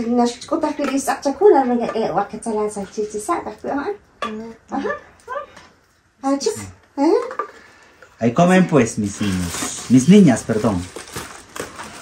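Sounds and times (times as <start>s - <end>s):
people talking: 0.0s - 5.5s, 6.2s - 7.4s, 8.2s - 10.9s.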